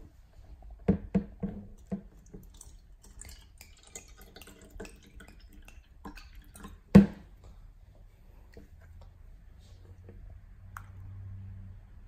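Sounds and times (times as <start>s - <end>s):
water pouring into plastic cup: 1.8s - 7.0s.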